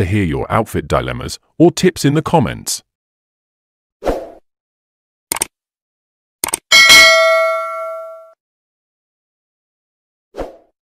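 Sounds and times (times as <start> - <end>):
bright bell ding: 6.7 - 8.4.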